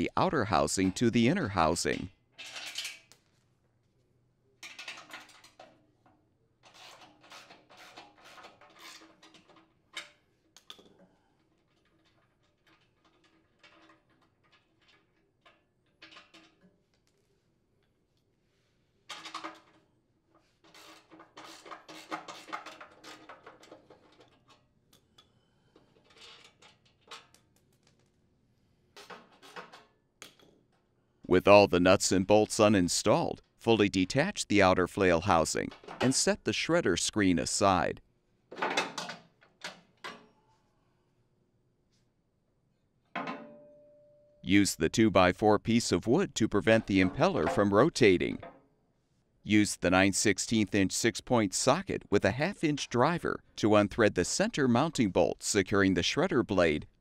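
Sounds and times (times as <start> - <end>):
wrenches clinking on metal: 11.7 - 16.6.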